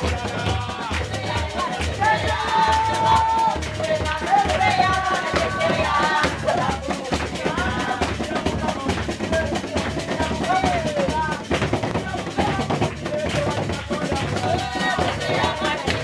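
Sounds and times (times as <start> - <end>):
women singing together: 0.0 - 8.6, 14.3 - 16.0
steady drum beat: 0.0 - 16.0.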